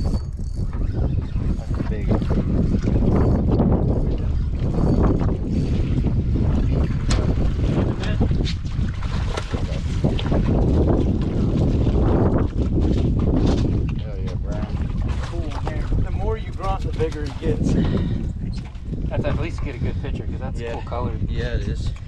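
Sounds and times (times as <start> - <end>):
wind rumble on microphone: 0.0 - 22.0.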